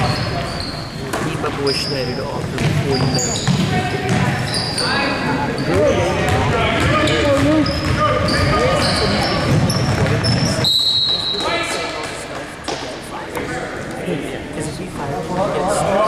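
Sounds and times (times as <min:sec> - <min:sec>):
sneakers squeaking: 0:00.0 - 0:13.5
spectators talking and calling out: 0:00.0 - 0:16.0.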